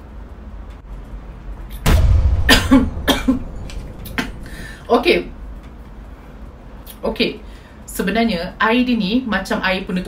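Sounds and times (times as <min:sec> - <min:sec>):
woman coughing: 0:02.5 - 0:03.4.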